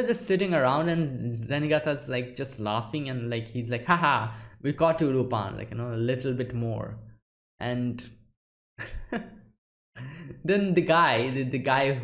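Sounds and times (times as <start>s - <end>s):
man laughing: 8.8s - 9.4s, 10.0s - 10.5s.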